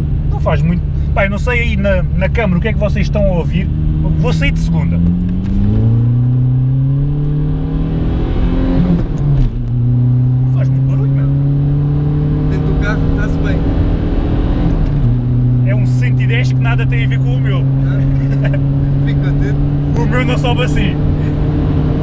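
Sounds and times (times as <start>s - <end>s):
diesel engine accelerating hard: 0.0s - 22.0s.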